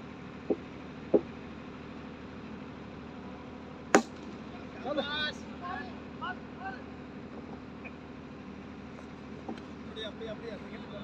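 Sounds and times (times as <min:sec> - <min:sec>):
cricket bat striking ball: 0:04.0 - 0:04.2.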